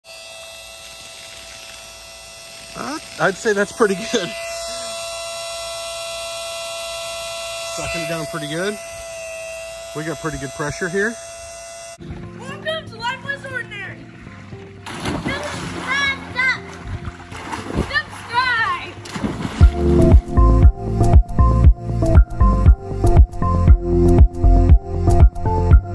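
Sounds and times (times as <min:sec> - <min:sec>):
electric pump humming: 0:00.0 - 0:25.9
splash into swimming pool: 0:14.8 - 0:19.8
water jetting onto grass: 0:14.8 - 0:19.8
background music with beat: 0:19.6 - 0:25.9.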